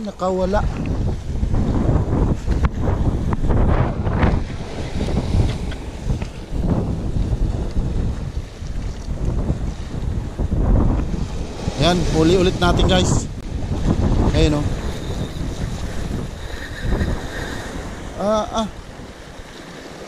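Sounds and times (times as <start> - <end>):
waves splashing against rocks: 0.0 - 20.0
wind buffeting microphone: 0.0 - 20.0.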